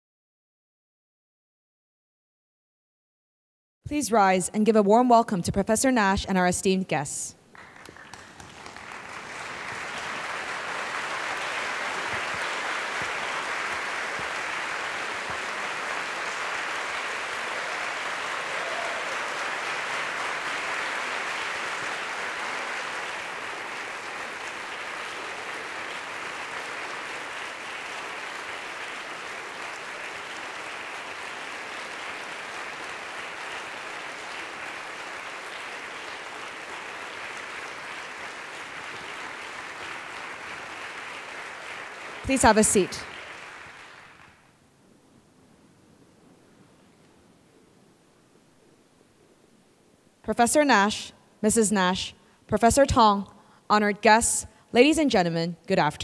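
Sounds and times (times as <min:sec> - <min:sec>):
large audience applauding: 0:07.5 - 0:44.6.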